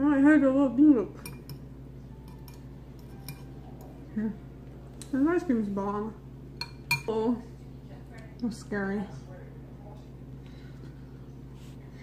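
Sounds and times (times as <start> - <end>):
metal utensil clinking on bowl: 1.2 - 1.6, 2.2 - 3.5, 5.8 - 7.2.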